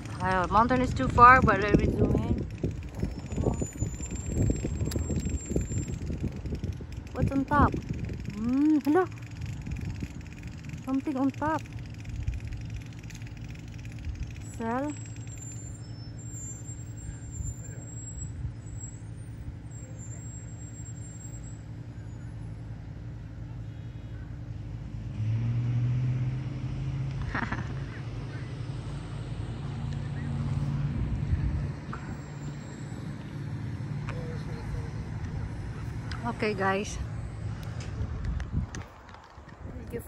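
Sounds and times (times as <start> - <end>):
engine humming: 0.0 - 40.0.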